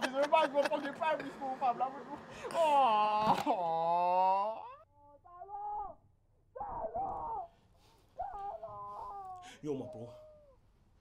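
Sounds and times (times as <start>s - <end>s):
person whimpering moans: 2.4s - 4.8s.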